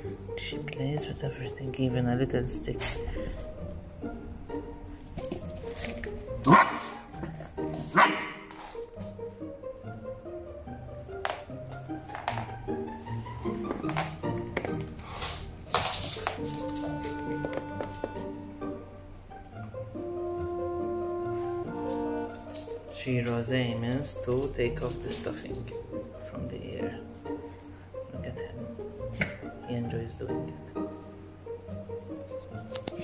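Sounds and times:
background music with held notes: 0.0s - 33.0s
dog barking: 6.4s - 8.5s.

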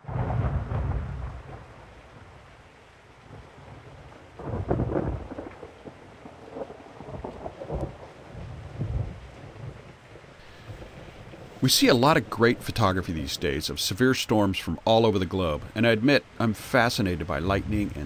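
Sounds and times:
thunder rumbling: 0.0s - 2.6s, 3.2s - 18.0s
rain falling: 0.0s - 18.0s.

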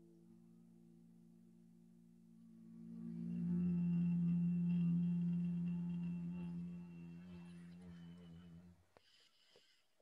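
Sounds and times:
man chanting low om: 2.5s - 8.8s.

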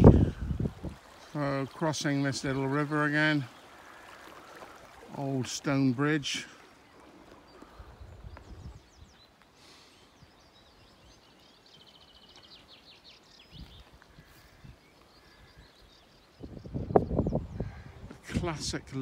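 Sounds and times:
wind gusts on microphone: 0.0s - 1.2s, 7.6s - 9.2s, 15.5s - 19.0s.

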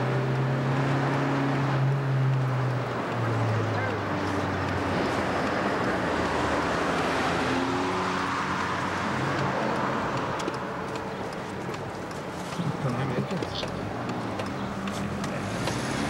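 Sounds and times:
car engine rumble: 0.0s - 16.0s
road noise: 0.0s - 16.0s.

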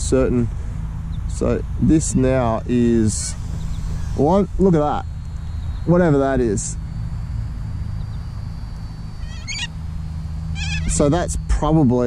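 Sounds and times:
low outdoor hum: 0.0s - 12.0s
bird calls: 1.0s - 7.0s, 7.7s - 11.8s.

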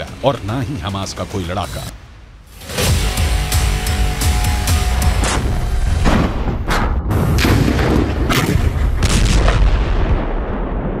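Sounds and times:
explosions: 6.0s - 11.0s.

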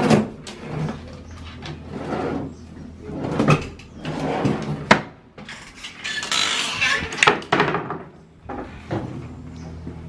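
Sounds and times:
wooden drawers opening and shutting: 0.0s - 9.4s.

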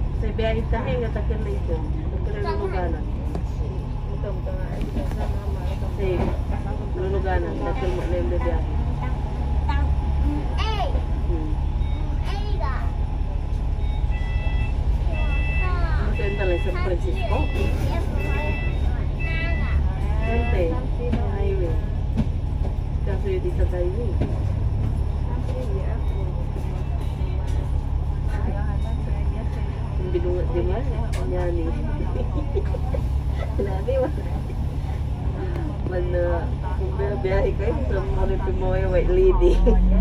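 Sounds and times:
bus engine idling: 0.0s - 40.0s
voices: 0.0s - 40.0s
short electronic beeps: 13.7s - 19.8s.

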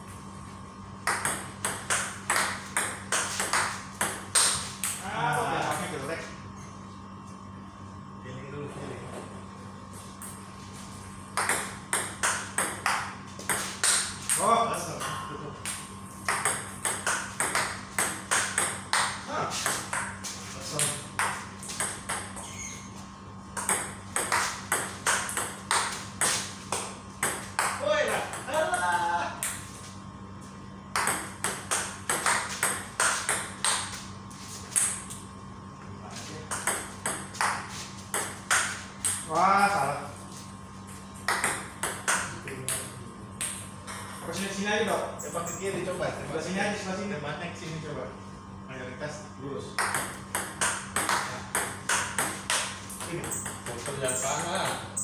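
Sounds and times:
ball bouncing on table: 1.0s - 4.6s, 11.4s - 14.4s, 15.7s - 20.2s, 20.8s - 22.6s, 23.6s - 28.6s, 30.9s - 34.0s, 36.5s - 39.3s, 41.2s - 44.2s, 49.8s - 55.0s
table tennis ball hits: 1.0s - 5.0s, 11.4s - 14.5s, 15.6s - 20.2s, 20.8s - 22.5s, 23.6s - 28.6s, 30.9s - 34.0s, 34.7s - 35.2s, 36.5s - 39.4s, 41.2s - 44.2s, 49.8s - 55.0s.

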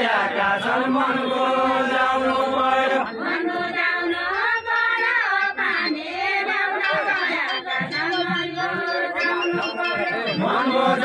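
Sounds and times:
men singing a long note: 0.0s - 4.9s, 8.6s - 11.0s.

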